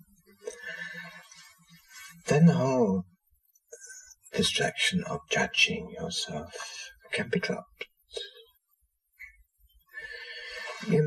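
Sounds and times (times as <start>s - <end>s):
man speaking: 2.1s - 3.1s, 3.8s - 8.4s, 10.1s - 11.0s
man breathing in: 10.0s - 10.9s.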